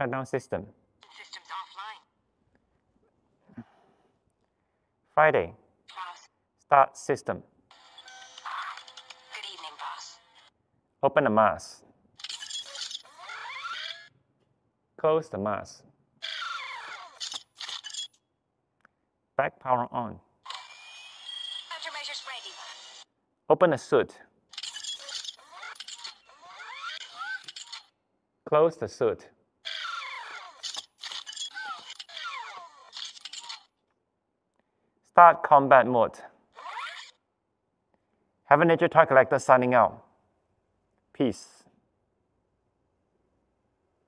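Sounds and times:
servo motors whining: 0:12.2 - 0:14.1, 0:16.2 - 0:18.2, 0:20.5 - 0:23.1, 0:24.6 - 0:27.9, 0:29.7 - 0:33.7, 0:36.6 - 0:37.2.

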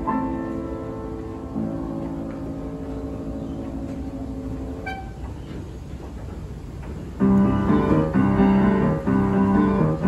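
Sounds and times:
low hall noise: 0:00.0 - 0:10.0.

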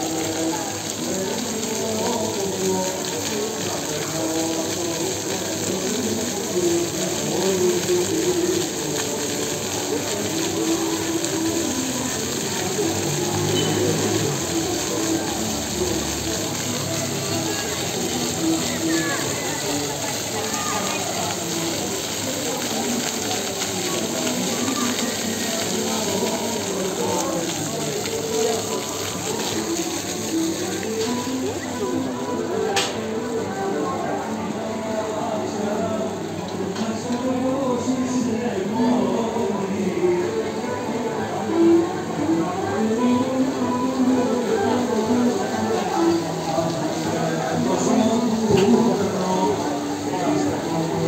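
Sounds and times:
chatter of many people: 0:00.0 - 0:51.0
fountain water splashing: 0:00.0 - 0:51.0.

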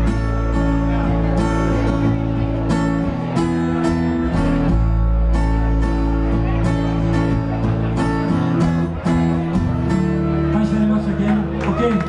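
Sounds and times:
bass guitar: 0:00.0 - 0:12.0
strummed electric guitar: 0:00.0 - 0:12.0.

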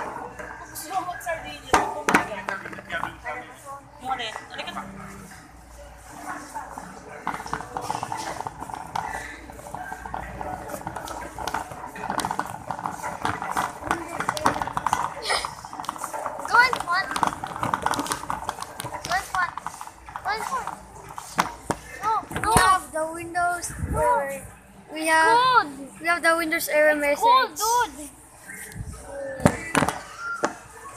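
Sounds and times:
crowd voices overlapping: 0:00.0 - 0:30.9
shopping cart wheels clattering: 0:06.0 - 0:22.8.

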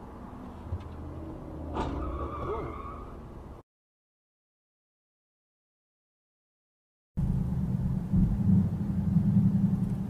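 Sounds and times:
car road and engine rumble: 0:00.0 - 0:03.6, 0:07.2 - 0:10.0.

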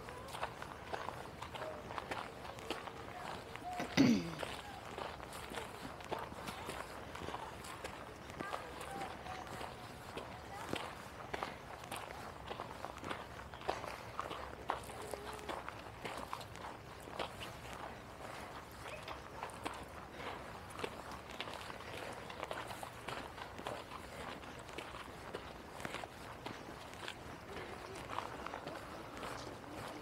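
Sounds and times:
faint distant voices: 0:00.0 - 0:30.0.

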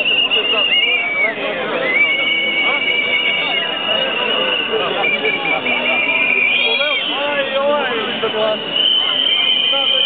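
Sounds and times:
high-pitched whistle blasts: 0:00.0 - 0:07.5, 0:08.2 - 0:10.0
crowd chatter: 0:00.0 - 0:10.0.

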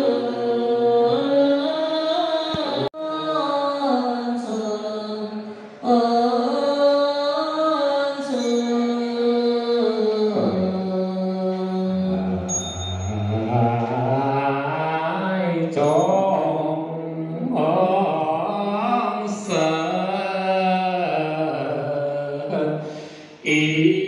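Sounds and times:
mantra chanting in long tones: 0:00.0 - 0:24.0
high ringing strike: 0:12.1 - 0:13.8.

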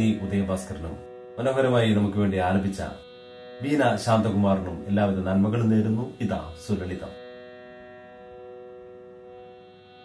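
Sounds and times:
musical drone of held notes: 0:00.0 - 0:10.0.

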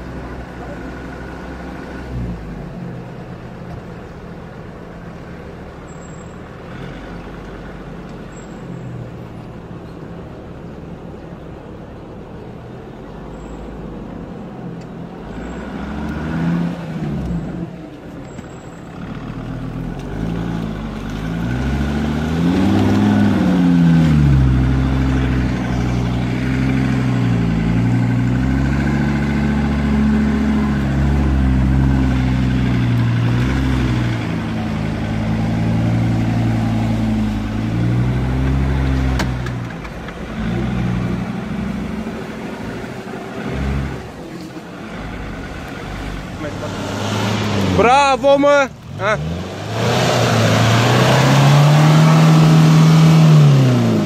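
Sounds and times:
off-road vehicle engine revving: 0:13.8 - 0:54.0.

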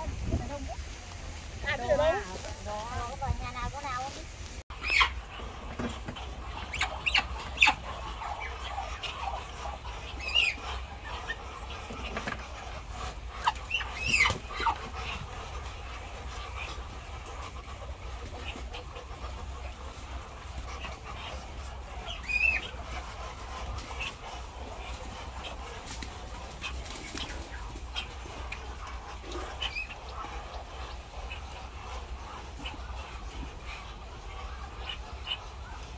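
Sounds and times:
short high poultry calls: 0:04.7 - 0:35.9.

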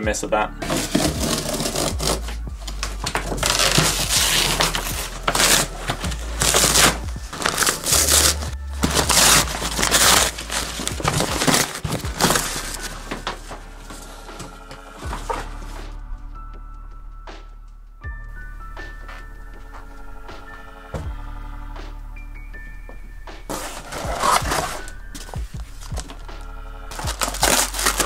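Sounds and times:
cardboard ripping and crumpling: 0:00.6 - 0:15.6, 0:23.5 - 0:26.2, 0:26.9 - 0:28.0.

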